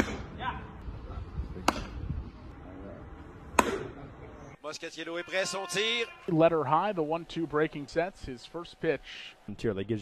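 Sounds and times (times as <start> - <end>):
baseball striking sharp crack: 0.0 - 0.4, 1.6 - 2.0, 3.5 - 4.0.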